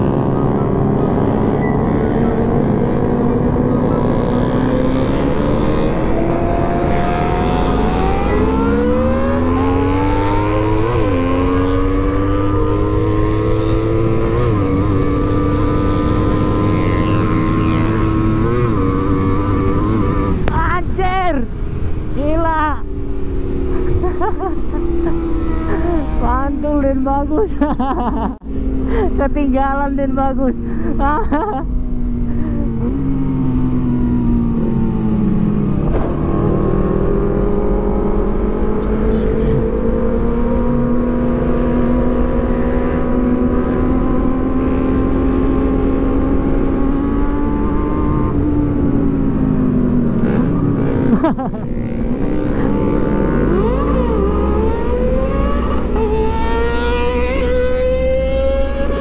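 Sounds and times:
motorcycle engine: 0.0 - 22.2, 28.4 - 59.0
wind and road rumble: 0.0 - 59.0.

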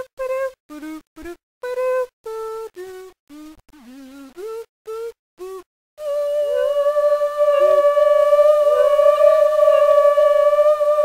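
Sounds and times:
person humming high note: 6.0 - 11.0.

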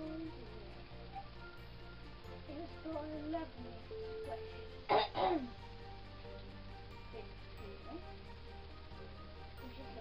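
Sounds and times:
soft background music: 0.0 - 10.0
person clearing throat: 4.9 - 5.5.

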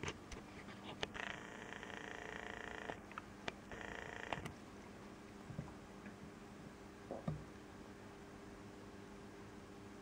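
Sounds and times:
zoom lens motor whirring: 1.1 - 3.0, 3.7 - 4.5.

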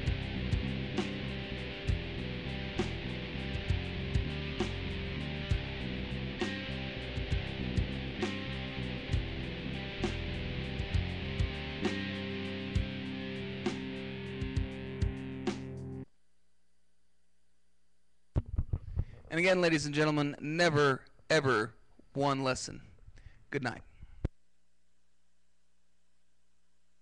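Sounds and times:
backing track with sharp beat: 0.0 - 15.7
electric bass guitar: 0.0 - 16.0.

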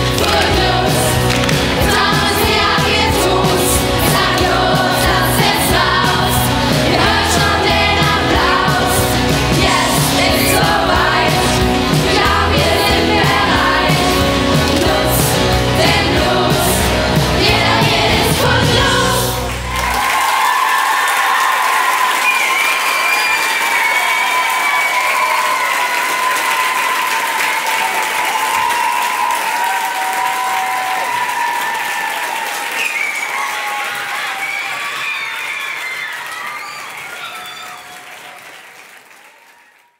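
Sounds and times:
audience applauding: 0.0 - 39.9.

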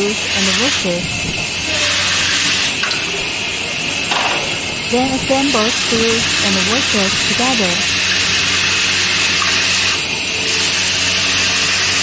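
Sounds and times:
low drive hum: 0.0 - 10.5.

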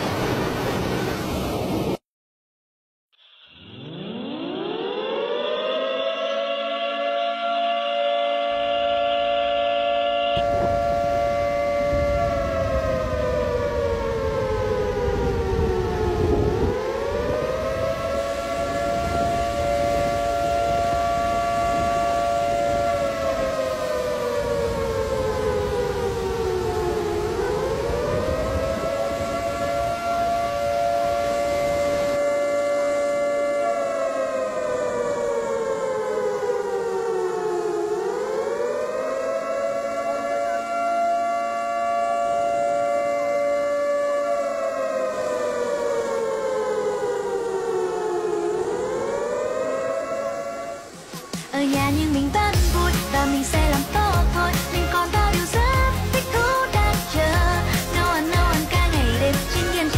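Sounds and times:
low rush of water: 0.0 - 2.0, 44.3 - 59.9
wailing siren: 3.4 - 59.9.

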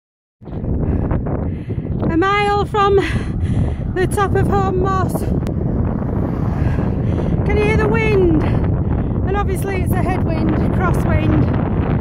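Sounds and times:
wind buffeting microphone: 0.4 - 12.0.

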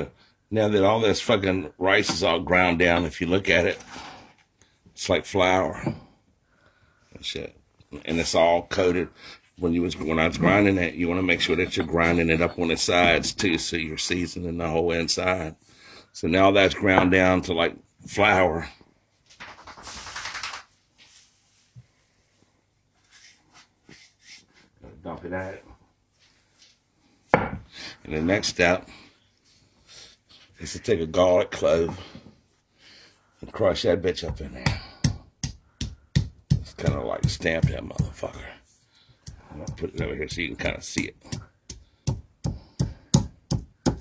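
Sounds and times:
pestle pounding in stone mortar: 34.3 - 38.2, 39.3 - 44.0.

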